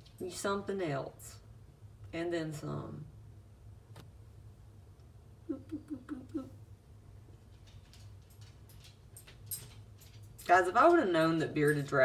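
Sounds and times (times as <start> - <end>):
low steady hum: 0.0 - 12.0
woman laughing softly: 5.4 - 6.7.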